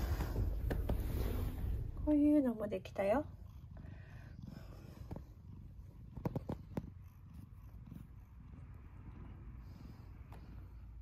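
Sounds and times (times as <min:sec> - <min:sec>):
cat purring: 0:00.0 - 0:11.0.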